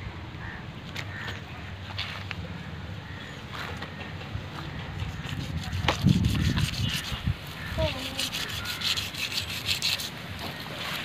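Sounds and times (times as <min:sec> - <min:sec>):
knife scraping fish scales: 0:05.0 - 0:10.2.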